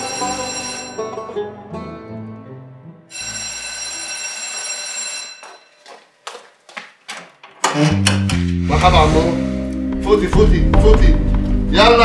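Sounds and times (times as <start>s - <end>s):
electric doorbell ringing: 0.0s - 1.3s, 3.1s - 5.8s.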